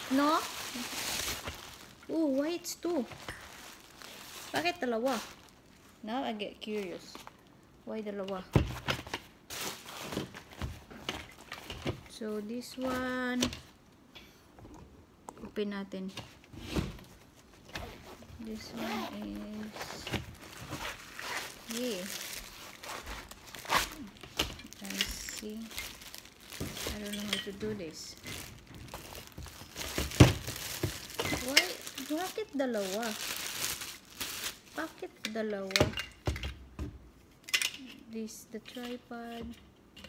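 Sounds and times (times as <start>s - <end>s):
nylon bag rustling and bumping: 0.0s - 5.5s, 17.2s - 34.8s.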